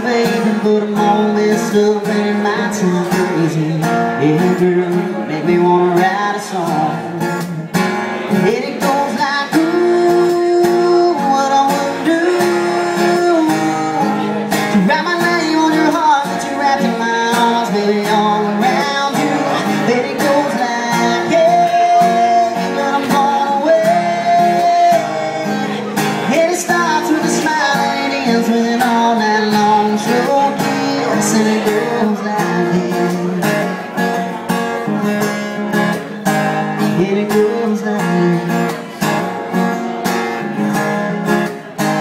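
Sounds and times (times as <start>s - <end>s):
acoustic guitar strumming: 0.0s - 42.0s
man singing: 0.0s - 42.0s.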